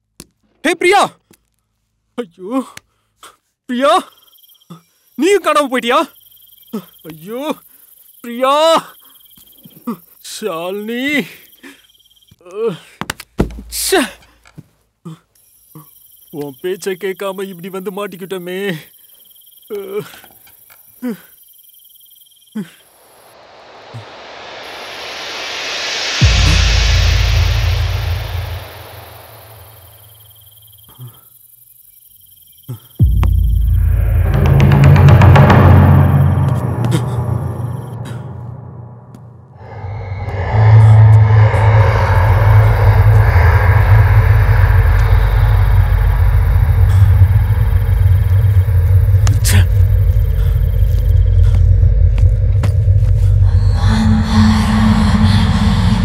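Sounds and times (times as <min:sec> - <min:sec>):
low rumbling drone: 0:22.9 - 0:30.8, 0:33.0 - 0:56.0
rushing noise riser: 0:22.9 - 0:30.8, 0:33.0 - 0:56.0
sharp high hit: 0:23.0 - 0:30.5, 0:33.0 - 0:50.8.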